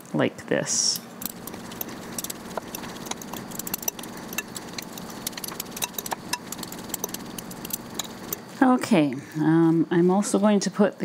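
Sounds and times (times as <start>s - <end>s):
forks scraping glass bowl: 1.3s - 8.4s.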